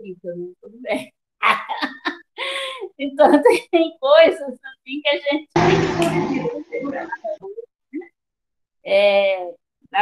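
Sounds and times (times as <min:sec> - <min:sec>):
woman laughing: 0:00.9 - 0:02.7.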